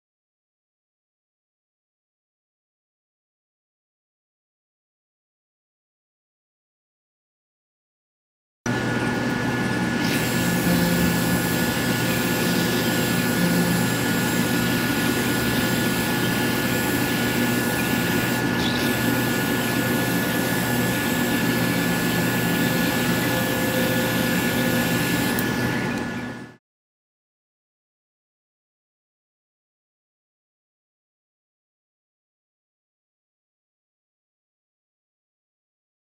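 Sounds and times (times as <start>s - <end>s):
electric car polisher whining: 9.9s - 26.1s.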